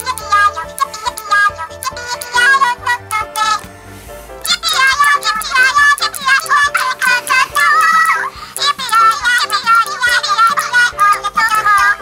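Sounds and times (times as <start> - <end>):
toys playing electronic melody: 4.4 - 12.0.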